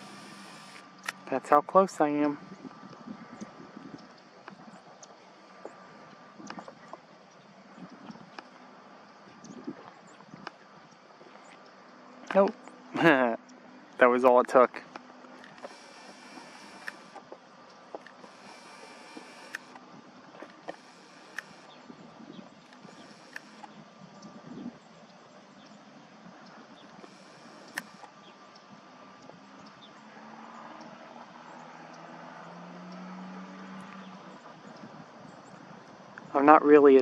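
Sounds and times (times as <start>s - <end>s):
camera zoom lens motor whirring: 0.0s - 1.3s, 14.9s - 35.6s
distant traffic hum: 0.0s - 37.0s
camera handling clicks: 22.7s - 23.7s, 27.6s - 28.1s.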